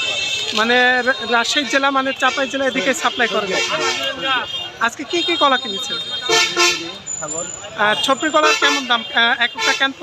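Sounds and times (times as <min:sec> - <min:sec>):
vehicle horn tooting: 0:00.0 - 0:07.1.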